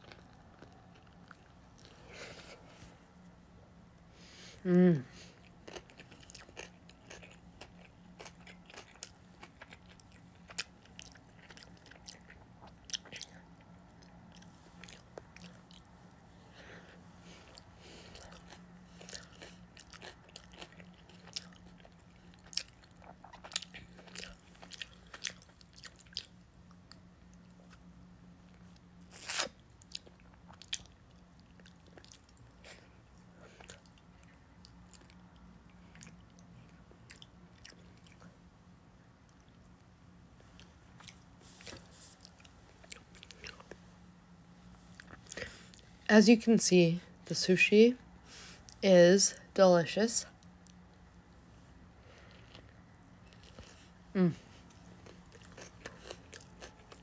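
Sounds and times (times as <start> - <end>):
faint steady hum: 0.0 - 57.0
person chewing: 4.7 - 16.1, 16.7 - 27.9, 28.5 - 38.4, 40.6 - 43.8, 44.9 - 45.9, 52.0 - 57.0.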